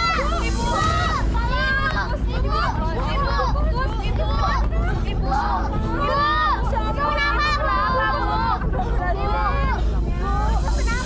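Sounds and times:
voices talking and crying out: 0.0 - 11.0.

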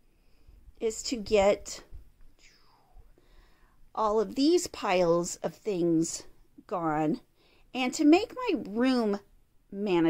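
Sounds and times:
woman breathing softly: 2.4 - 3.9, 7.3 - 7.7.

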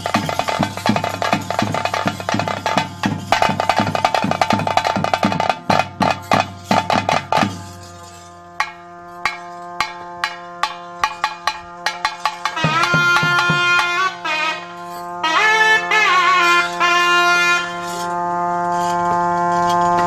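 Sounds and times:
fast dense drumming: 0.0 - 7.7, 8.6 - 14.1
steady held tones: 0.0 - 17.1.

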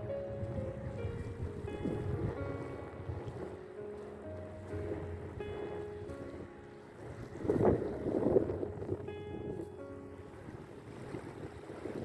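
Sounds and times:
background music with held notes: 0.0 - 12.0
wind buffeting microphone: 0.0 - 12.0.

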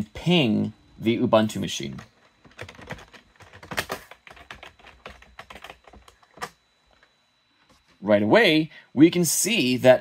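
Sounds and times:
computer keyboard typing: 1.9 - 7.1.

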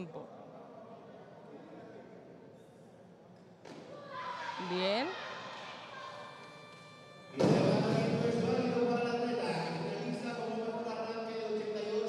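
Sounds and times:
voices in hall: 0.0 - 12.0
music: 5.6 - 10.6.

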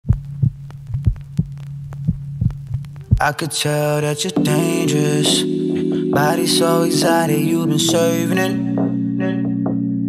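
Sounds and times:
heartbeat-like low thumps: 0.0 - 3.3
faint crackle-like ticks: 0.1 - 3.3.

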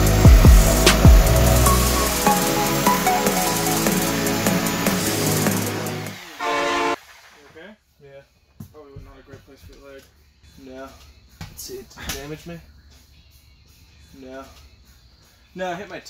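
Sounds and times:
music track held note: 0.0 - 7.0.

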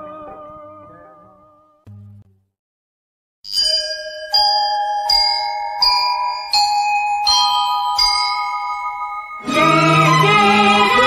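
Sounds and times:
bell-like chimes in slow melody: 3.5 - 10.3.

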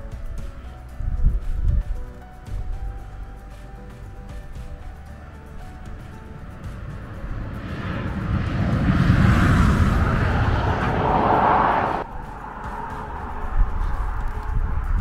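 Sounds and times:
quiet background music: 0.0 - 15.0
vehicle passing: 5.2 - 15.0.

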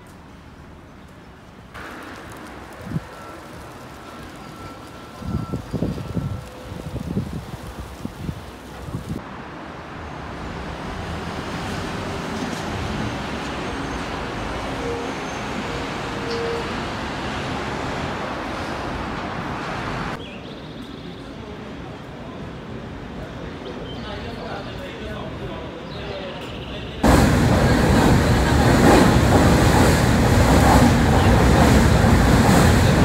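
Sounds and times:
road traffic passing: 0.1 - 20.2, 27.0 - 33.0
wind buffeting microphone: 5.1 - 9.2, 27.0 - 33.0.

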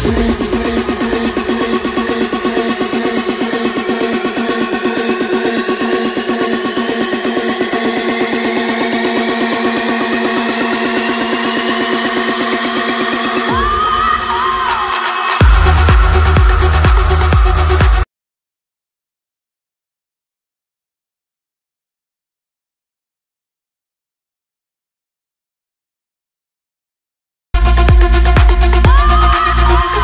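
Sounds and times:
deep bass: 0.0 - 14.2, 15.4 - 18.0, 27.6 - 30.0
pulsing synth line: 0.0 - 14.2, 15.4 - 18.0
rising synth sweeps: 0.0 - 14.3, 15.4 - 18.0.

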